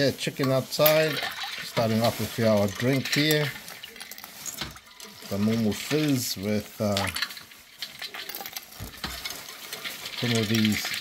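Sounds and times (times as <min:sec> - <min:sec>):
ice clinking against ladle and bowl: 0:00.4 - 0:11.0.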